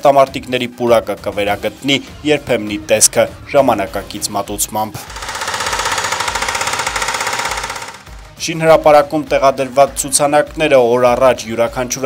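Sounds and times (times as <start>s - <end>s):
hydraulic breaker hammering concrete: 5.0s - 8.6s.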